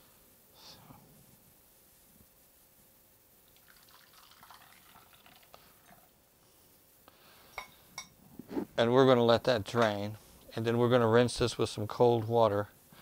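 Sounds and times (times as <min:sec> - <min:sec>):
liquid pouring and dripping into bowl: 0:03.5 - 0:06.1.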